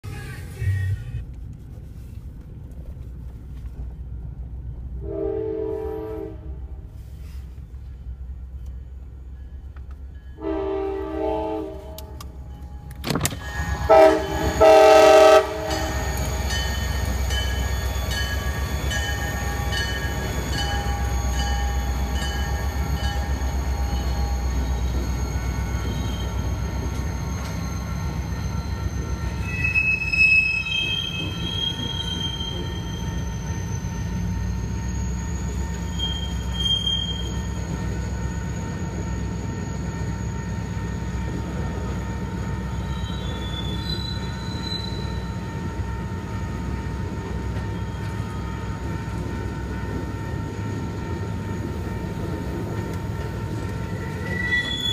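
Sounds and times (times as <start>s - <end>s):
train rumbling past: 0.0s - 54.9s
train horn blasts: 5.0s - 6.8s, 10.4s - 12.3s, 13.6s - 16.2s
wheel squeals: 15.7s - 41.0s, 42.6s - 45.5s, 53.6s - 54.9s.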